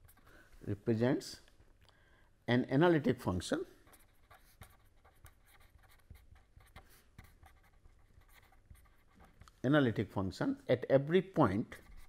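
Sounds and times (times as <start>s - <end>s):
pen scratching on paper: 3.8s - 9.4s.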